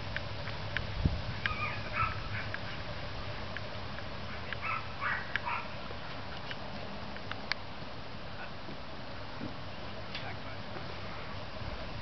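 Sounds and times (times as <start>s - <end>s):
dog whining yips: 1.5s - 2.2s.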